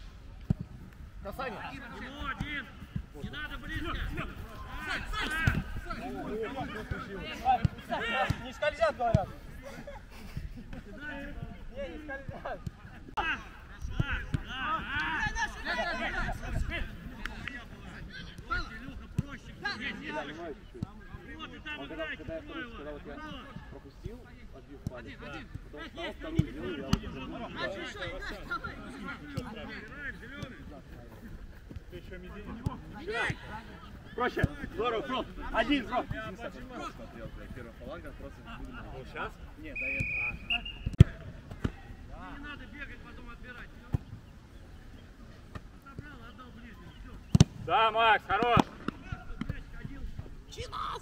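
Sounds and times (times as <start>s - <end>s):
players calling and shouting: 0.0s - 51.0s
men talking quietly: 1.2s - 51.0s
football being kicked: 47.3s - 47.6s.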